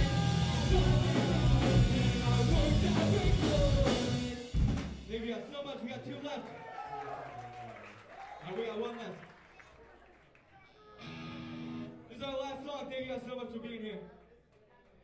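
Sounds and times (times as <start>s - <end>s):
pop-punk band playing: 0.0s - 5.2s
guitars ringing out: 11.0s - 12.1s.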